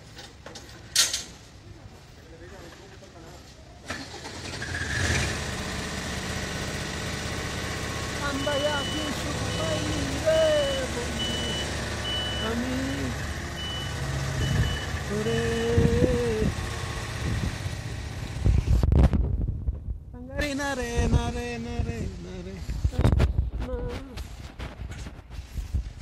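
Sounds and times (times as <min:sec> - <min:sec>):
lift engine running: 0:05.0 - 0:18.4
motion alarm beeping: 0:08.2 - 0:15.8.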